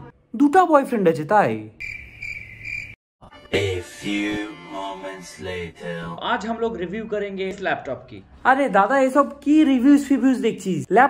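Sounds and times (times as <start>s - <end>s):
cricket chirp sound effect: 1.8s - 3.0s.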